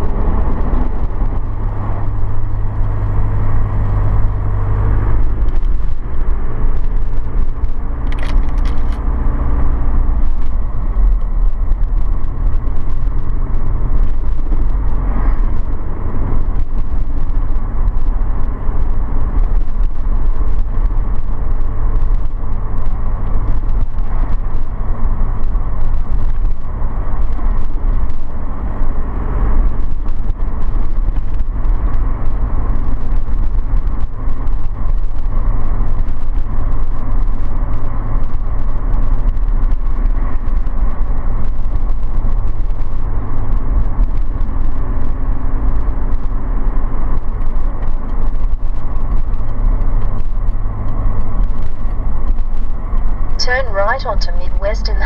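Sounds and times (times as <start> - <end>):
vehicle engine and road rumble: 0.0 - 55.0.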